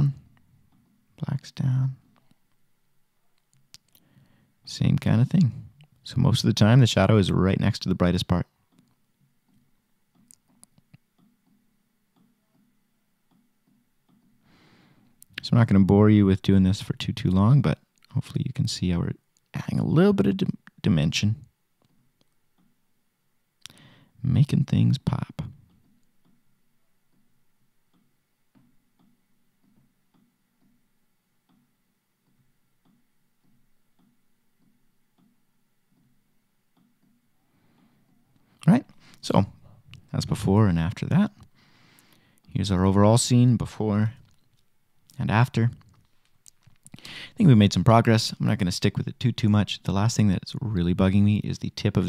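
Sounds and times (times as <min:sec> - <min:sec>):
soft breath: 0:03.9 - 0:04.6, 0:14.4 - 0:15.2, 0:23.7 - 0:24.2, 0:37.4 - 0:39.8, 0:41.5 - 0:42.5, 0:46.9 - 0:47.4
faint regular ticking: 0:08.0 - 0:14.4, 0:24.7 - 0:42.6.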